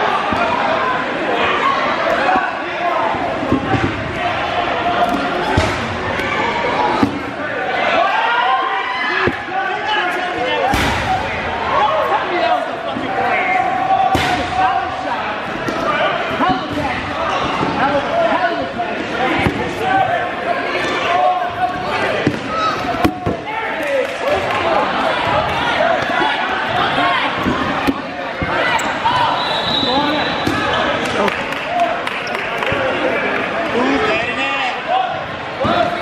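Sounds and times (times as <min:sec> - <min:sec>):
players calling out: 0:00.0 - 0:36.0
dodgeballs striking: 0:02.1 - 0:07.4, 0:09.2 - 0:09.6, 0:10.4 - 0:11.6, 0:14.0 - 0:18.0, 0:19.2 - 0:20.2, 0:20.8 - 0:23.6, 0:25.1 - 0:31.3.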